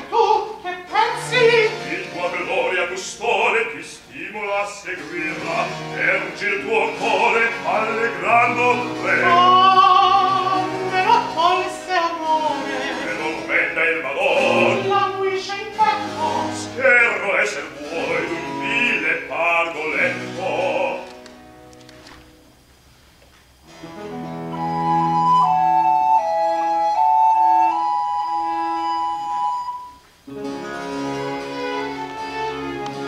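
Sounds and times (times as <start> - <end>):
chamber orchestra with harpsichord: 0.0 - 3.7, 5.1 - 21.0, 30.4 - 33.0
male opera singers: 0.0 - 21.3.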